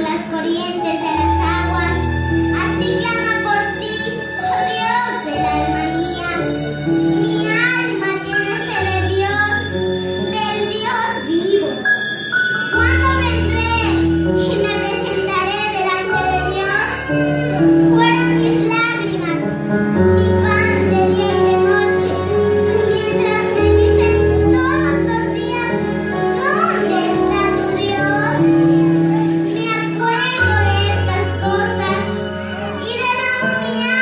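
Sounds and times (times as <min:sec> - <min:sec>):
child singing into a microphone: 0:00.0 - 0:11.8, 0:12.8 - 0:34.0
electronic keyboard chords: 0:00.0 - 0:34.0.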